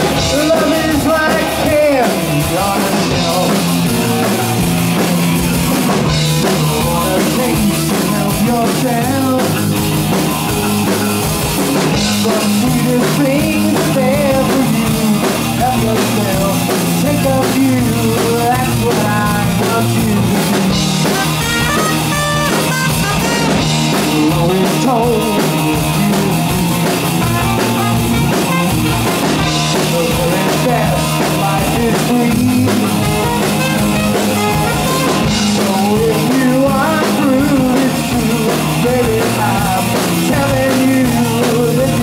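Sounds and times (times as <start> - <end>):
drum kit: 0.0 - 42.0
electric bass: 0.0 - 42.0
electric guitar: 0.0 - 42.0
trumpet: 21.0 - 23.7, 27.2 - 29.0.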